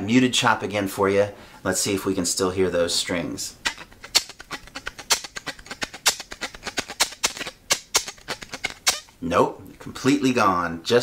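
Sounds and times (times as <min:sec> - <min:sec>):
violin bow chop strokes: 0:03.4 - 0:09.2.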